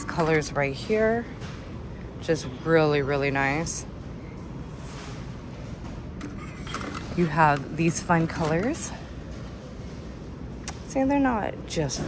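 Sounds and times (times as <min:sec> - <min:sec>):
shop interior hum: 0:00.0 - 0:12.0.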